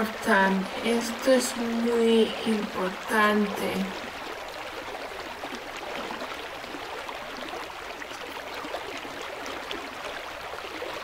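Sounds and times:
stream water rushing: 0.0 - 11.0
water trickling: 0.0 - 11.0.

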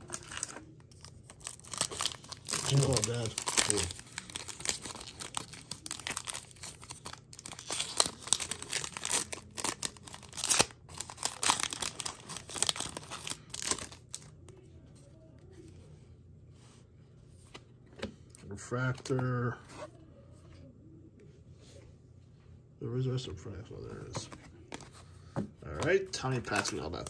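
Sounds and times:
foil wrapper tearing and crinkling: 0.0 - 14.2, 26.2 - 27.0.

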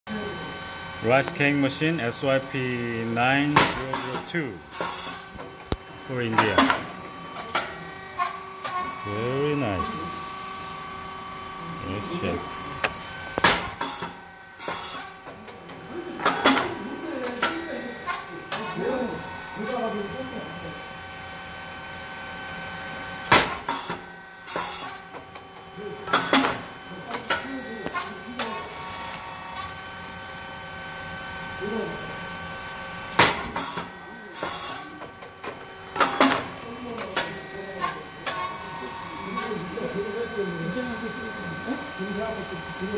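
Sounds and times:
puffing machine bursts: 0.6 - 11.1, 11.9 - 15.2, 16.0 - 20.4, 23.3 - 29.9, 33.1 - 41.5.

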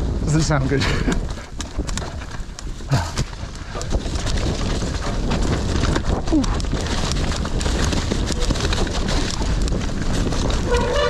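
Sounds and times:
mountain bike rattling on trail: 0.0 - 11.0
wind on microphone: 0.0 - 11.0
tyre rumble: 0.7 - 11.0
person grunting: 2.9 - 3.2.

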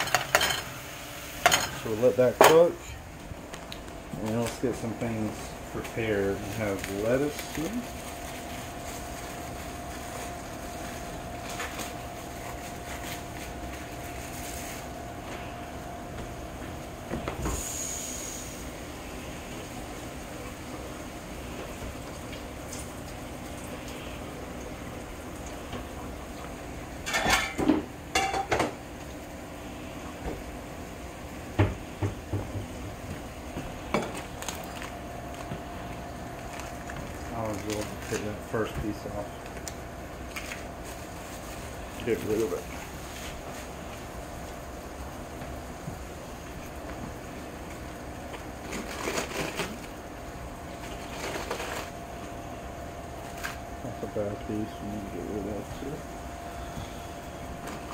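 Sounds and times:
dishes and utensils clattering: 0.0 - 0.7, 27.0 - 28.8
low steady hum: 0.0 - 57.9.

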